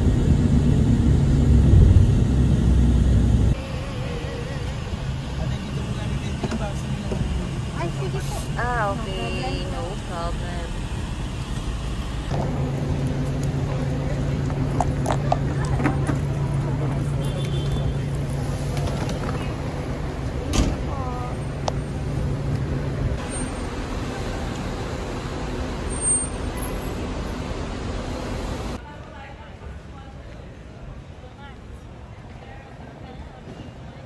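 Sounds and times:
van cabin road noise: 0:00.0 - 0:28.8
people talking: 0:03.6 - 0:10.8, 0:13.5 - 0:19.6, 0:20.6 - 0:21.5.

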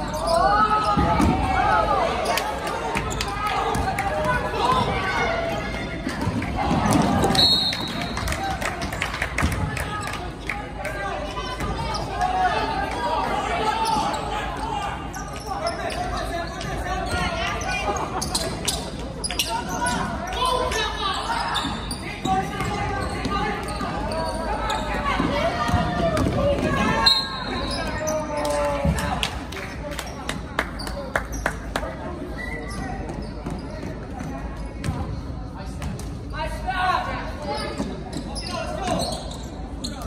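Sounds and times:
shouting and chatter: 0:00.0 - 0:34.7.

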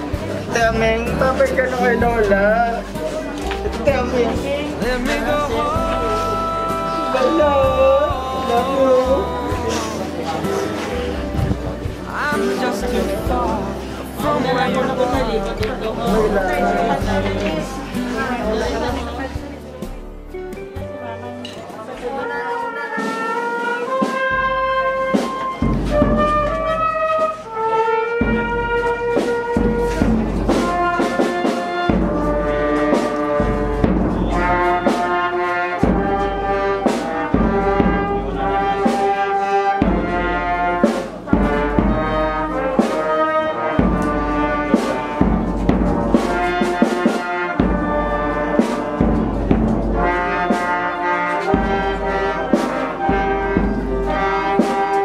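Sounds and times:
brass band playing slow melody: 0:00.0 - 0:55.0.

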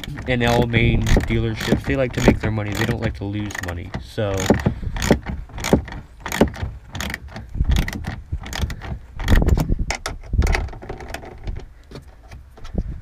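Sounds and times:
hand ratchet clicking: 0:00.0 - 0:11.6
knocks and handling noise: 0:00.0 - 0:13.0.

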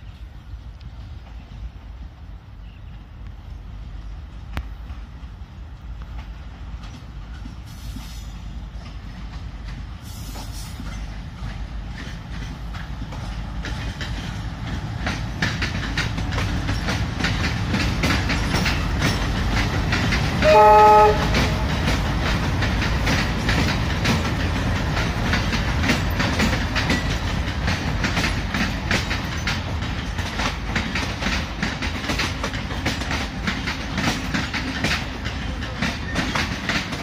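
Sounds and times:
diesel train engine rumble: 0:00.0 - 0:37.0
train wheels clattering over rail joints: 0:06.0 - 0:37.0.

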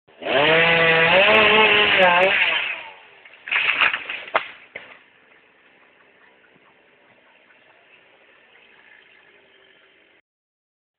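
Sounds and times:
chainsaw cutting wood: 0:00.1 - 0:04.6.

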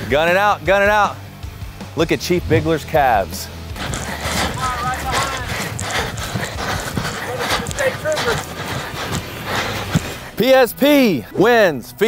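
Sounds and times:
quick irregular thuds: 0:02.4 - 0:10.4.

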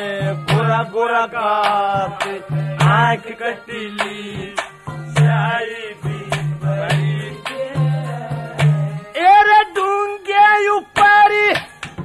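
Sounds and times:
sharp drum strikes: 0:00.3 - 0:00.8, 0:01.6 - 0:03.1, 0:04.0 - 0:09.0.

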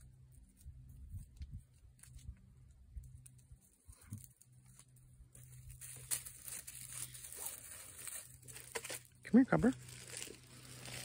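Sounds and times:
dry leaves and twigs crackling underfoot: 0:00.0 - 0:11.0.

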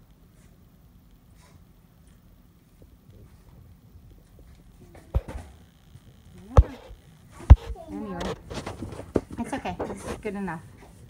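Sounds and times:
sharp knocks: 0:05.1 - 0:05.5.

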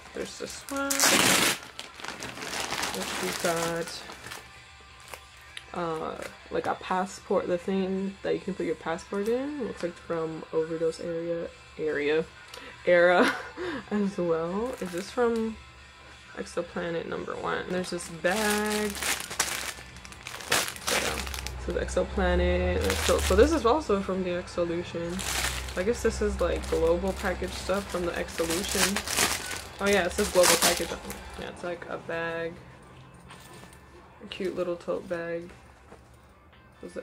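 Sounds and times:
packaging crinkling: 0:00.6 - 0:04.4, 0:18.3 - 0:21.6, 0:22.8 - 0:23.6, 0:25.2 - 0:31.4.

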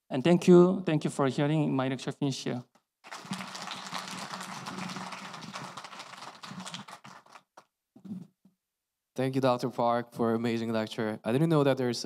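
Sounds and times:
audience applauding: 0:03.1 - 0:07.6.

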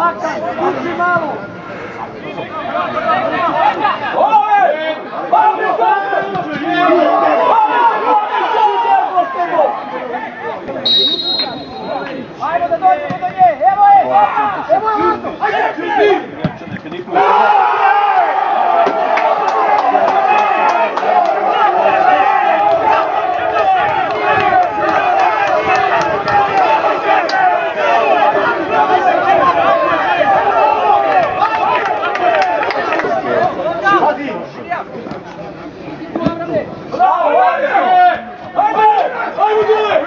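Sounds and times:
men shouting over one another: 0:17.1 - 0:32.6.

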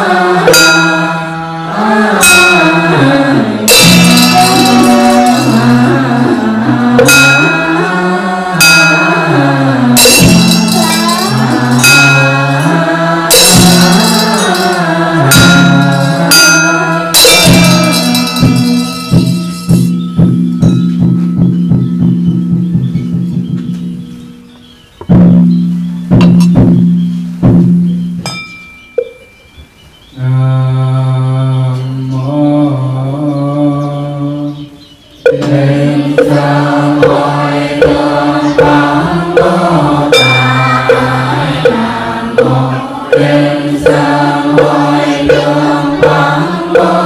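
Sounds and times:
group chanting: 0:00.0 - 0:19.7, 0:35.3 - 0:47.0
struck bell ringing: 0:00.5 - 0:06.3, 0:07.0 - 0:21.6, 0:28.2 - 0:29.6, 0:35.3 - 0:47.0.

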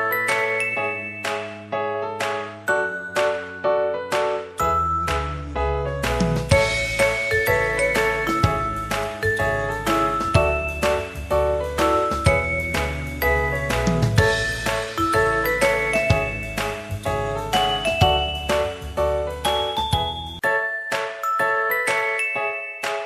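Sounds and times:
bass line: 0:04.6 - 0:20.4.

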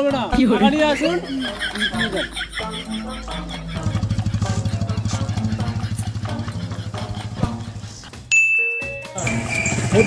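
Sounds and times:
background music: 0:00.0 - 0:10.0
motorcycle engine running: 0:03.7 - 0:07.9, 0:09.2 - 0:10.0.

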